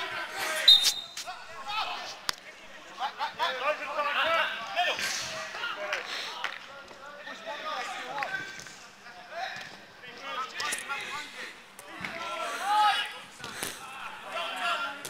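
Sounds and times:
players shouting: 6.8 - 15.0.

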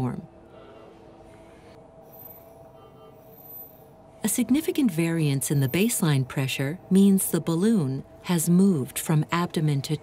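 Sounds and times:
faint soft background music: 0.0 - 10.0.

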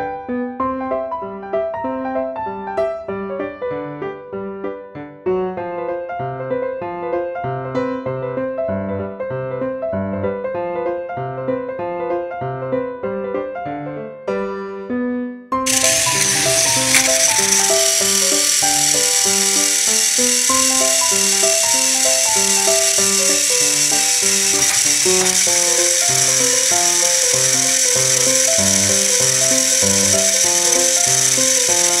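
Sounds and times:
piano music: 0.0 - 32.0
toy train motors whirring: 15.7 - 32.0.

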